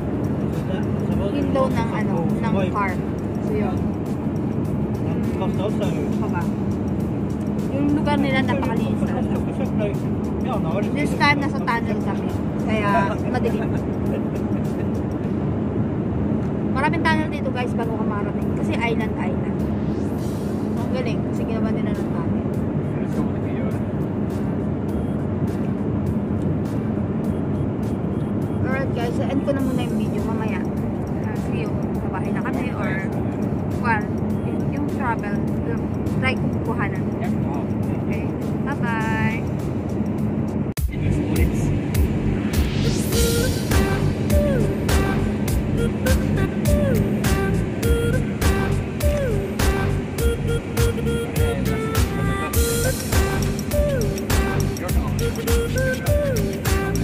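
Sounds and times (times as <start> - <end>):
music with steady beat: 0.0 - 15.6, 18.1 - 57.0
car cabin road and engine drone: 0.0 - 57.0.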